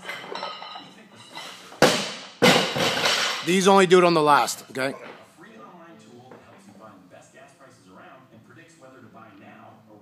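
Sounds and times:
barbell crashing onto rubber floor: 1.8s - 3.4s.

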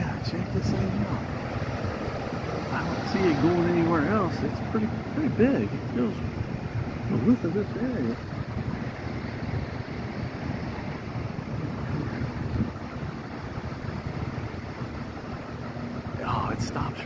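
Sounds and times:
distant traffic rumble: 0.0s - 17.0s
faint hum: 0.0s - 17.0s.

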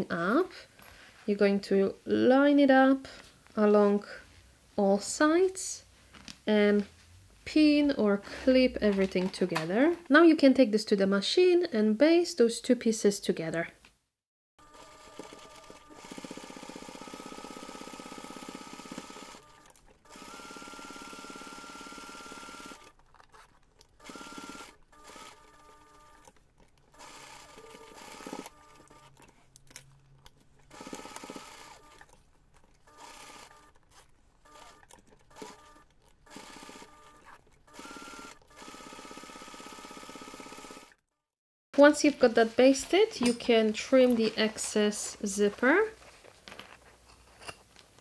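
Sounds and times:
sewing machine stitching: 14.6s - 29.4s, 30.6s - 41.0s.

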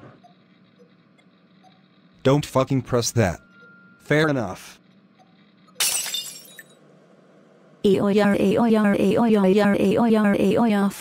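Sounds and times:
glass shattering: 5.8s - 6.8s
person speaking: 7.9s - 11.0s.

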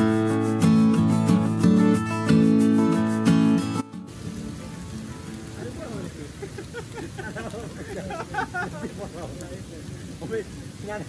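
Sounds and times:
voices: 5.2s - 11.0s.

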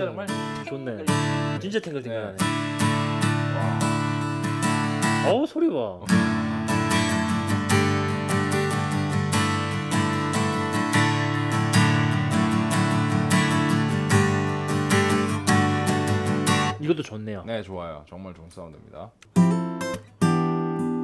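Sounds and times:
acoustic guitar strumming: 0.0s - 1.6s, 2.3s - 5.3s, 6.1s - 16.8s, 19.3s - 21.0s.

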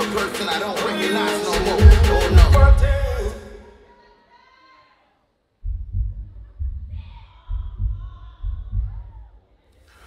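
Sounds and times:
heartbeat thumps: 1.6s - 3.3s, 5.6s - 9.3s.

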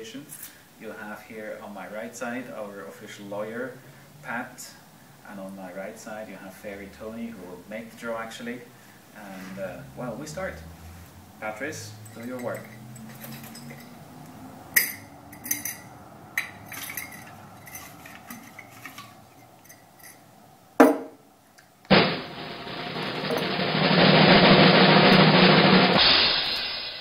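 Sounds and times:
glass jar clicks and rustles: 12.0s - 14.1s, 14.8s - 20.3s
snare drum roll: 21.9s - 27.0s.

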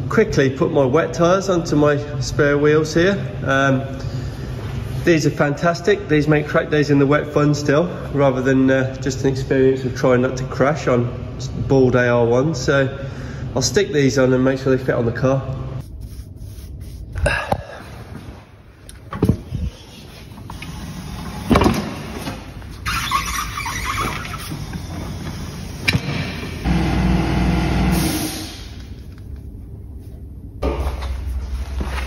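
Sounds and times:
rubber tyre squealing on rim: 22.8s - 25.1s
tyre machine running: 23.6s - 28.3s.

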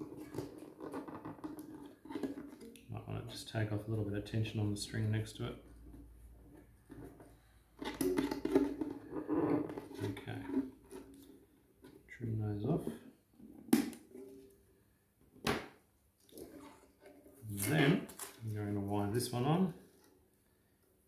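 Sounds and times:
man talking indistinctly: 17.5s - 19.8s.

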